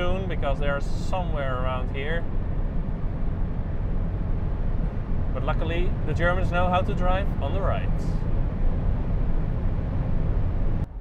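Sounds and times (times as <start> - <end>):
wind and tyre noise in car cabin: 0.0 - 11.0.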